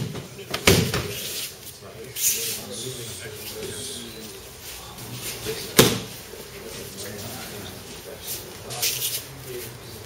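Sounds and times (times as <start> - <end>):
murmur of people talking: 0.0 - 10.0.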